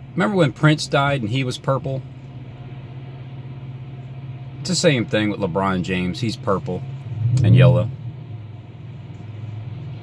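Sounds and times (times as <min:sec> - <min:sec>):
car cabin engine drone: 0:00.0 - 0:10.0.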